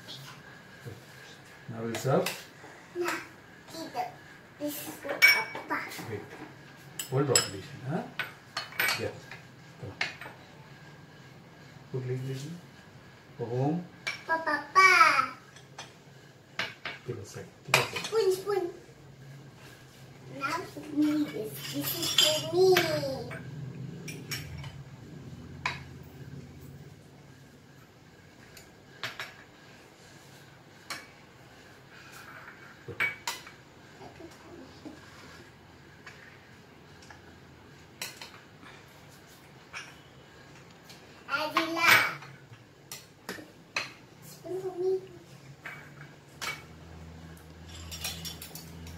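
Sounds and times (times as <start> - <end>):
spoon clinking against bowls: 47.5 - 48.9.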